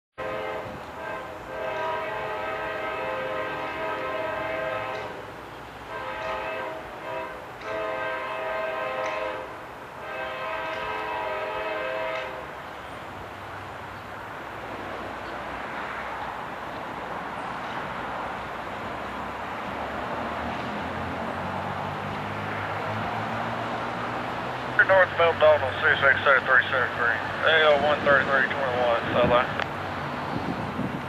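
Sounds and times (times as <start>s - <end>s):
locomotive air horn blasts: 0.2s - 5.3s, 5.9s - 12.5s
train rumble: 0.2s - 31.0s.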